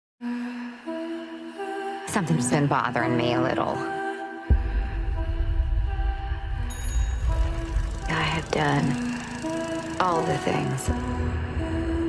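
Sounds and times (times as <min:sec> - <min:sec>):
soft hummed melody: 0:05.9 - 0:12.0.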